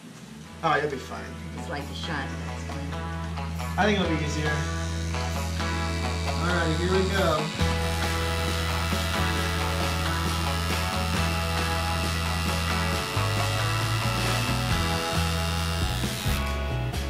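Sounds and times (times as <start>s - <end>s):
tattoo machine buzzing: 4.5s - 17.0s.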